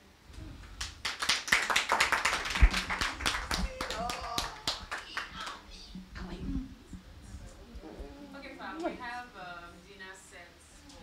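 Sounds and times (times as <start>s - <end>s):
scattered hand claps: 0.8s - 5.6s.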